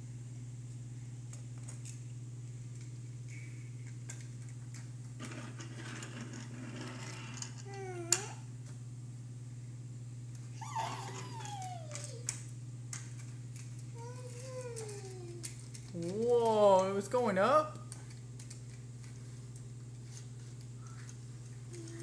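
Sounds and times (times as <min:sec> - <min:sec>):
steady low hum: 0:00.0 - 0:22.0
toy cars rolling on plastic: 0:04.1 - 0:08.3, 0:11.1 - 0:13.0, 0:13.6 - 0:16.6
toddler vocal sounds: 0:07.6 - 0:08.4, 0:10.6 - 0:12.3, 0:14.0 - 0:15.5.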